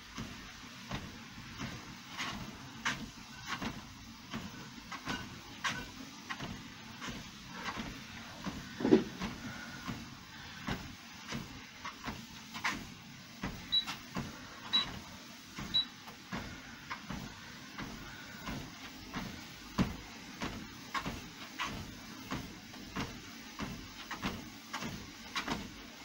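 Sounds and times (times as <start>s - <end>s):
footfalls on treadmill belt: 0.0s - 26.0s
treadmill console beeps: 0.2s - 6.8s, 13.4s - 25.8s.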